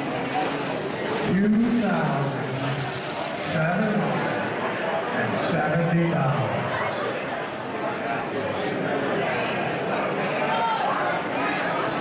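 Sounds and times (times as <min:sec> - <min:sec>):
man's voice: 0:01.2 - 0:02.8, 0:03.4 - 0:04.5, 0:05.2 - 0:06.6.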